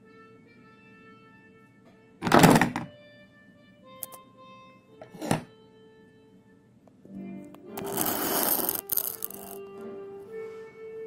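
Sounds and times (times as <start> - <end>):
faint background music: 0.0 - 11.0.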